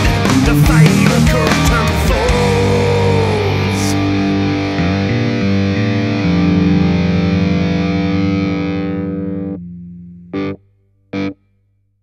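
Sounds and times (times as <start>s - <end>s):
distorted electric guitar chords: 0.0s - 11.4s.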